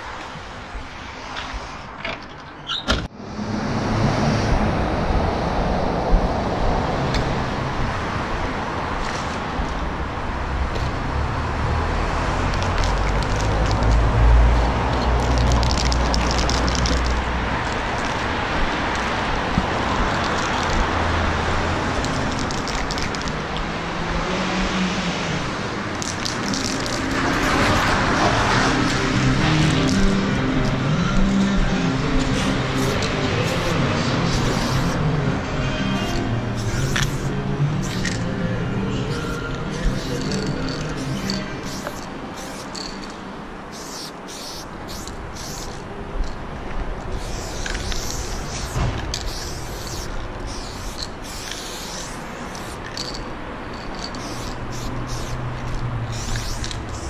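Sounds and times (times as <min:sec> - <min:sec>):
road traffic rumble: 0:00.0 - 0:57.0.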